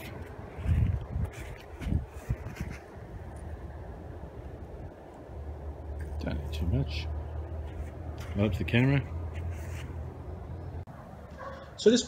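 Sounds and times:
wind buffeting microphone: 0:00.0 - 0:05.0.

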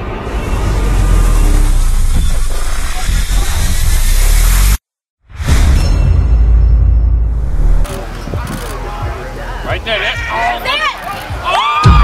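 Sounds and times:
heavy bass rumble: 0:00.3 - 0:04.8, 0:05.4 - 0:09.6.

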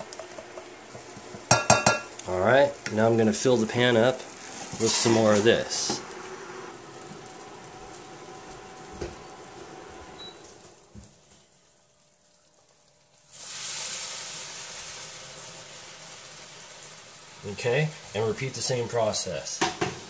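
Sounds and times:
frying pan hissing: 0:00.0 - 0:20.0
sauce sizzling in hot pan: 0:00.0 - 0:20.0
utensil knocking on cookware: 0:01.3 - 0:02.1, 0:19.6 - 0:20.0.

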